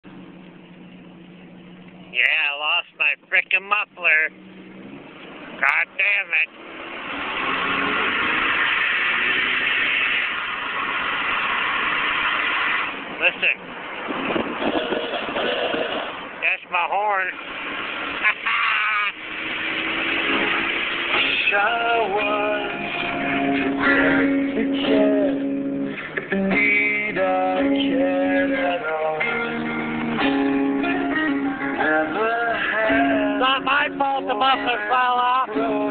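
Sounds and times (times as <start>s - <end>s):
car engine with loud exhaust rasp: 0.0s - 35.9s.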